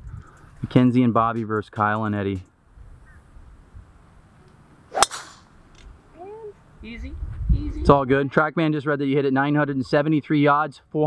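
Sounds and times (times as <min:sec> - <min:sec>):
golf driver striking ball: 0:04.9 - 0:05.6.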